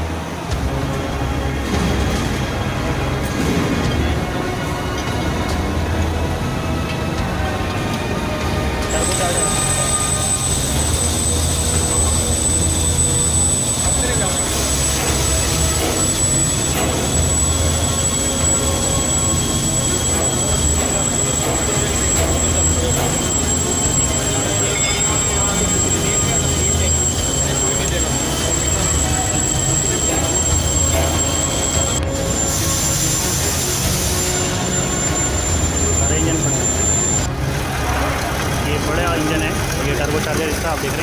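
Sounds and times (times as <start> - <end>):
factory machinery hum: 0.0 - 41.0
high-pitched whine: 8.8 - 37.6
indistinct voices: 8.8 - 41.0.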